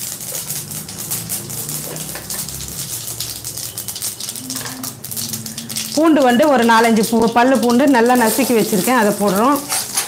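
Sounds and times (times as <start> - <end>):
seeds crackling in hot oil: 0.0 - 10.0.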